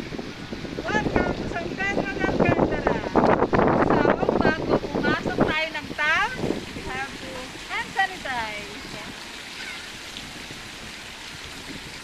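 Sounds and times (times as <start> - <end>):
water splashing in fountain: 0.0 - 12.0.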